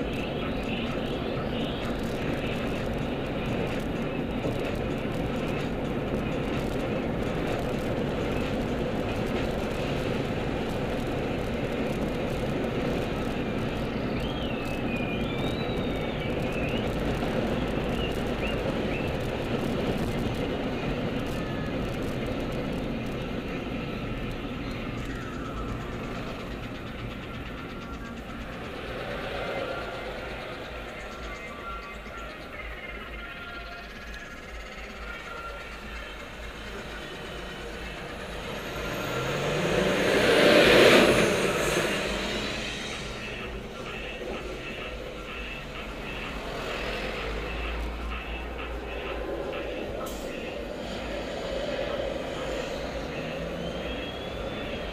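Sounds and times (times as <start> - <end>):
car cabin road and engine noise: 0.0 - 54.9.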